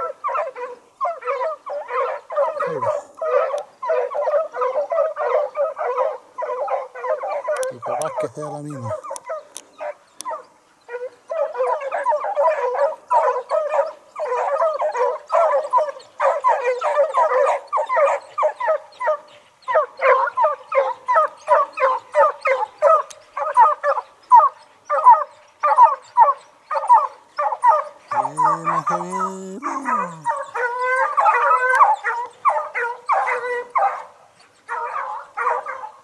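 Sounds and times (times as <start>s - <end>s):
pack of hounds baying: 0.0s - 36.0s.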